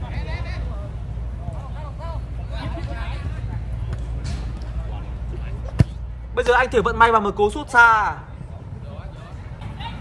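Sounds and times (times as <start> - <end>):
faint players' voices: 0.0 - 10.0
football being kicked: 5.6 - 6.0.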